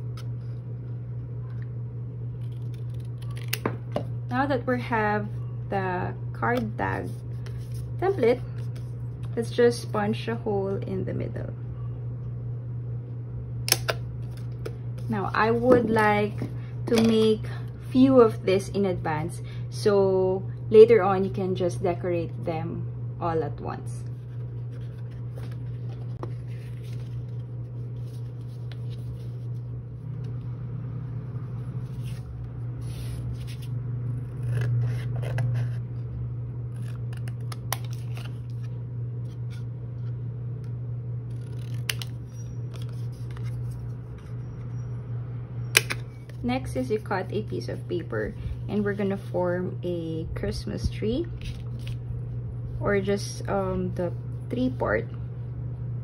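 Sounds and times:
steady low hum: 0.0 - 56.0
scissors snipping paper: 41.3 - 42.2.

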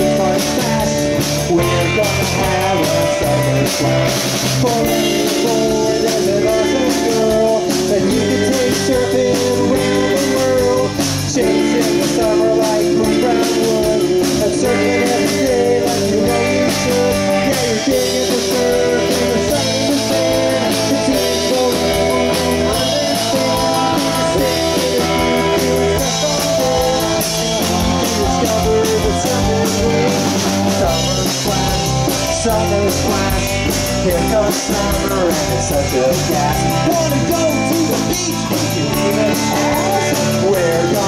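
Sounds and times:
drum kit: 0.0 - 41.0
electric guitars: 0.0 - 41.0.

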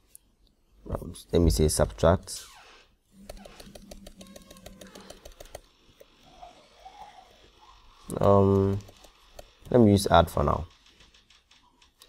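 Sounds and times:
computer keyboard typing: 3.2 - 5.7, 8.1 - 12.0.

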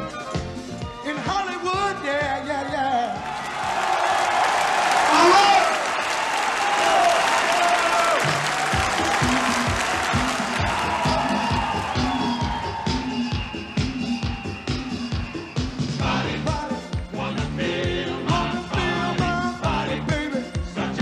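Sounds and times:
drums playing disco beat: 0.0 - 4.3, 7.6 - 21.0
audience applauding and cheering: 2.9 - 17.2
voice calling out: 5.1 - 5.8.

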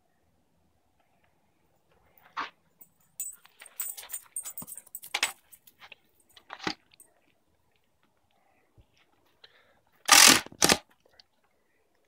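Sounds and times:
high-pitched jangling and rattling: 2.8 - 5.7.

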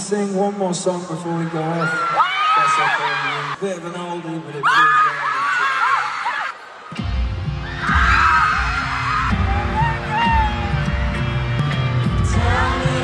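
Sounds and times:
crowd screaming: 1.4 - 3.6, 4.6 - 11.2
live band music over loudspeakers: 6.9 - 13.0.

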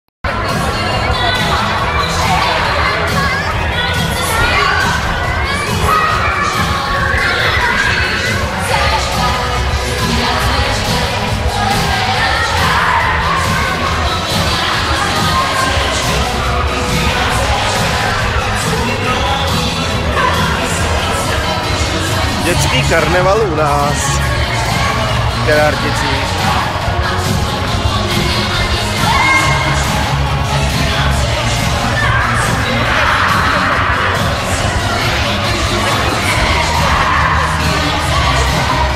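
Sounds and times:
loud dance music: 0.3 - 38.9
children shouting and squealing: 0.4 - 22.3, 28.0 - 30.1.

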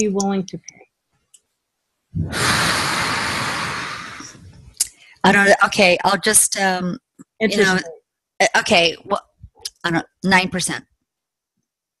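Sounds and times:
loud rushing noise: 2.2 - 4.6.

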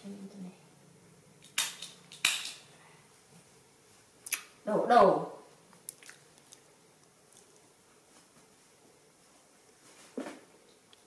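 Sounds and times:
diaper tape tabs ripping: 1.4 - 2.6.

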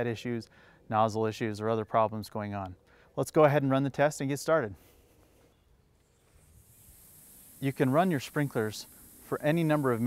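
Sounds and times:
sprinkler spray hiss: 6.2 - 10.0.

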